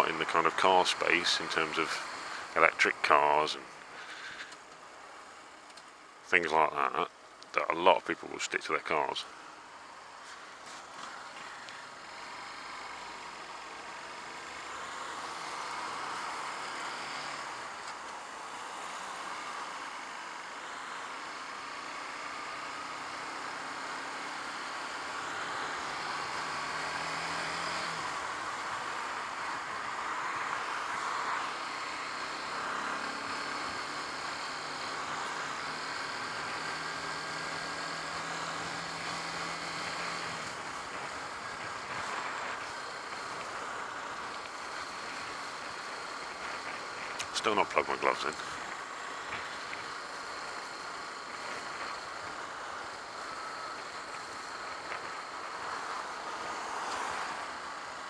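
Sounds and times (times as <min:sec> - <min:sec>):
wind and road noise: 0:00.0 - 0:58.0.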